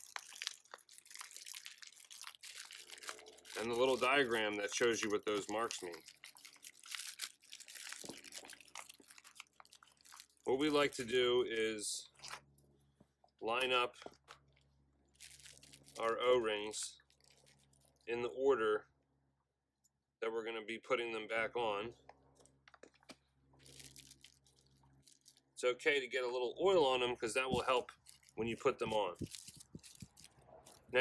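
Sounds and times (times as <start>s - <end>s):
foil wrapper crinkling: 0.0s - 12.5s, 15.1s - 18.1s, 22.4s - 25.6s, 27.4s - 31.0s.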